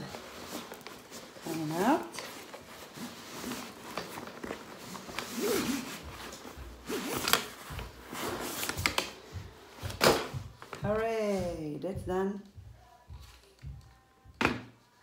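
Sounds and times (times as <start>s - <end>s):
fabric rustling: 0.0s - 11.5s.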